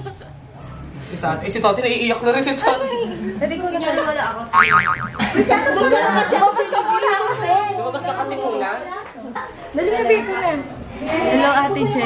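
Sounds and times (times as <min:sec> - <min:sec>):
wobbling boing: 0:04.6 - 0:05.8.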